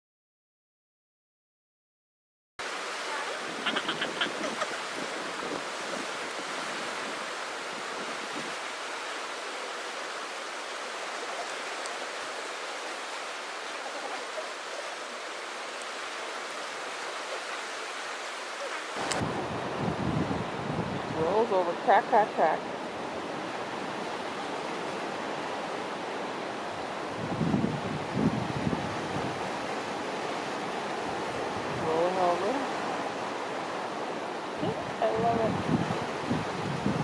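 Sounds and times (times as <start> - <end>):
ocean surf: 2.6 - 37.0
wind on microphone: 3.0 - 8.9, 18.6 - 21.8, 22.9 - 37.0.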